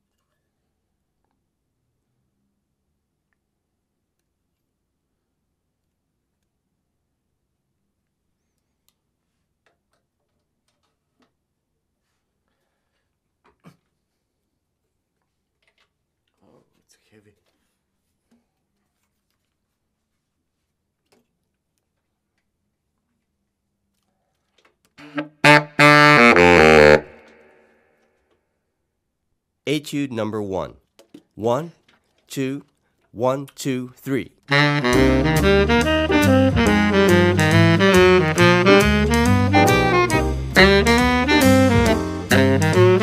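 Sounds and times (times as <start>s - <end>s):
baritone saxophone notes: 25.0s - 27.6s, 34.5s - 43.0s
faint clicks and taps of handling: 30.8s - 33.1s.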